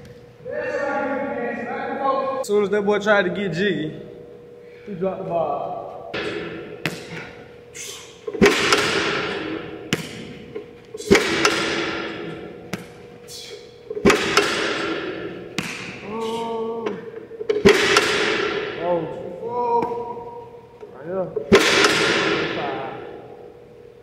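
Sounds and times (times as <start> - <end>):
ball thudding into hands: 9.9 - 10.4, 15.5 - 16.0.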